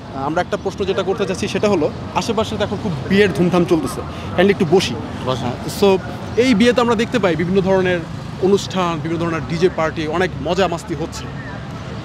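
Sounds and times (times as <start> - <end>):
man talking: 0.0 - 11.4.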